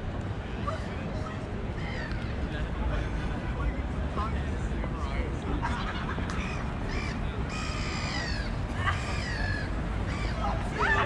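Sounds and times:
bird cawing: 6.4 - 10.4.

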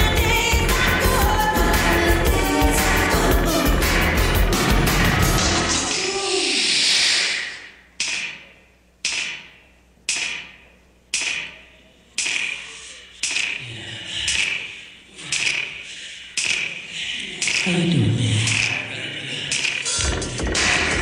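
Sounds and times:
dance music: 0.0 - 7.6, 16.4 - 21.0
sharp percussive hits: 8.0 - 11.6.

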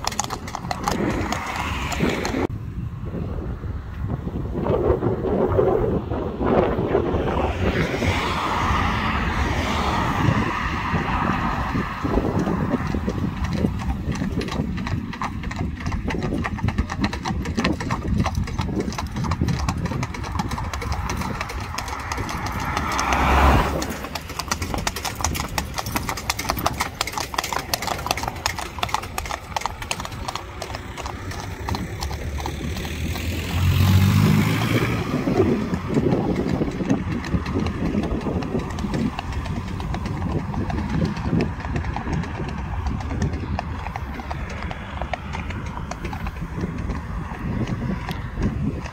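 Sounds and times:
horse hooves trotting on asphalt: 0.0 - 2.5, 4.0 - 48.9
car swishing past: 6.5 - 13.3, 21.8 - 24.6, 30.6 - 35.9
vehicle engine passing: 6.5 - 48.2.

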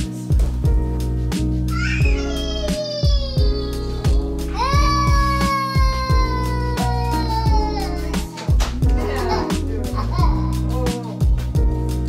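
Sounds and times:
background music with steady beat: 0.0 - 12.0
toddler whining cry: 1.7 - 10.7.

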